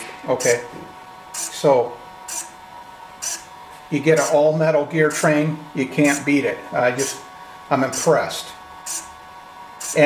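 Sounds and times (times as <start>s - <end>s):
servo whirring in high-pitched bursts: 1.3s - 2.6s, 3.2s - 4.5s, 5.1s - 10.0s.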